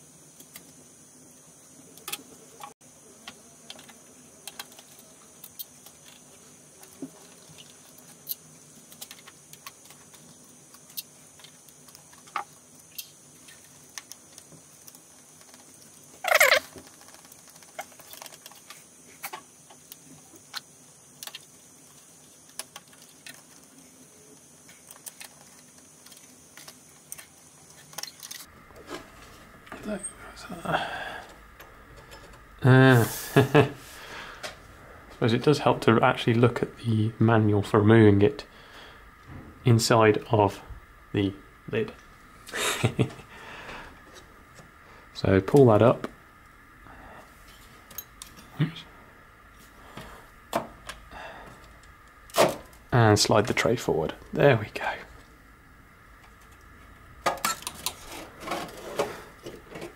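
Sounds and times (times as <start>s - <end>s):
faint high hiss: 0.0s - 56.1s.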